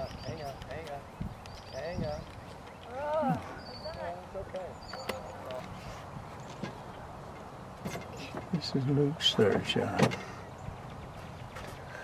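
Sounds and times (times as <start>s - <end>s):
birds calling: 0.0s - 12.0s.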